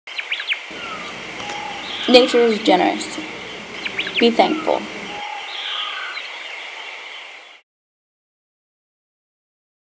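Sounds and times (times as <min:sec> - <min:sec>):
background hiss: 0:00.2 - 0:07.6
bird chirping and whistling: 0:00.8 - 0:02.6, 0:03.2 - 0:05.8.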